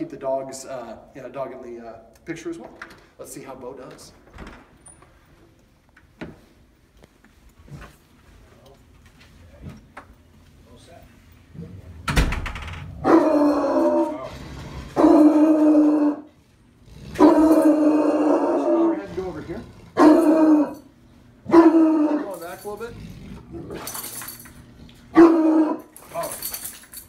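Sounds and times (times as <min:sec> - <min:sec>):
dog barking and baying: 0:13.0 - 0:14.3, 0:15.0 - 0:16.3, 0:17.2 - 0:19.1, 0:19.9 - 0:22.4, 0:25.1 - 0:25.9.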